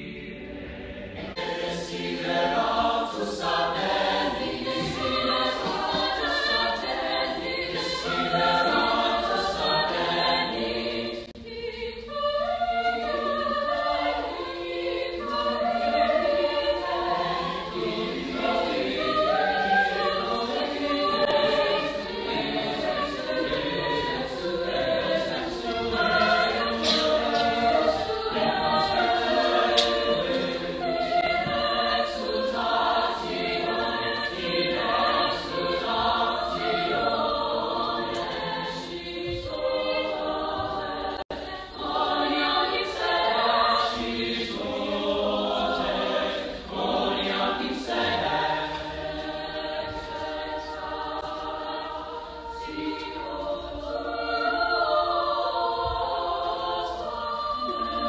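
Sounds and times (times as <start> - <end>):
mixed-voice choir singing: 0.0 - 58.0.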